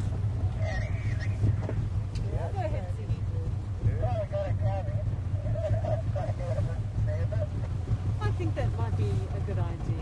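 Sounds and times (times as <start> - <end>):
outboard motor droning: 0.0 - 10.0
indistinct talk: 0.4 - 10.0.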